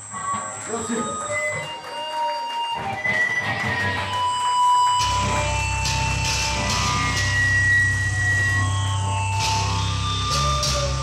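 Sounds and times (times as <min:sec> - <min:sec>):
electric guitar feedback tones: 0:00.0 - 0:11.0
stray guitar notes: 0:05.0 - 0:11.0.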